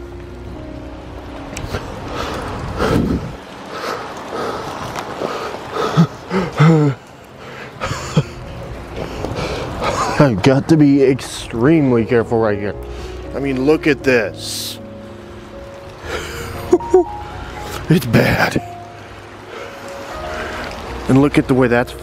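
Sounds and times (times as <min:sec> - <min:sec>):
footsteps through wet leaves: 0:00.0 - 0:22.0.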